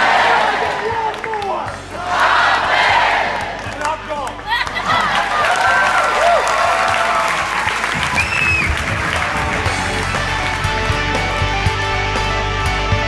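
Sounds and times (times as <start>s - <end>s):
audience applauding: 0.0s - 12.8s
music: 0.0s - 13.0s
cheering with whoops: 4.5s - 9.2s
whistle: 8.1s - 8.8s.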